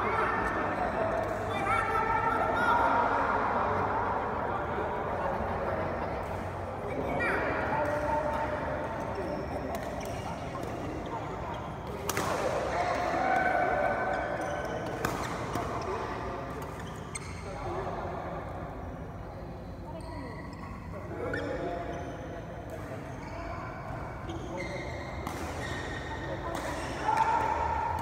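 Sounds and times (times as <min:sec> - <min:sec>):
players talking and calling: 0:00.0 - 0:28.0
racket hitting shuttlecock: 0:11.8 - 0:13.6, 0:25.2 - 0:28.0.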